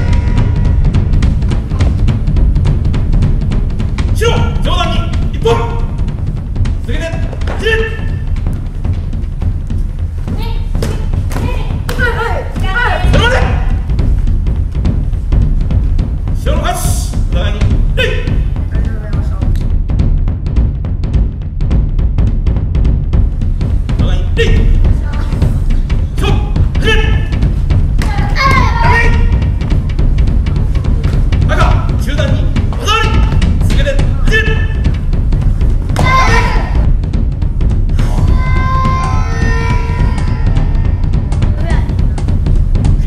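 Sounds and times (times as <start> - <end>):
children shouting: 0.0 - 1.1, 28.0 - 29.4, 36.0 - 36.9, 38.0 - 41.9
loud low rumble: 0.0 - 43.0.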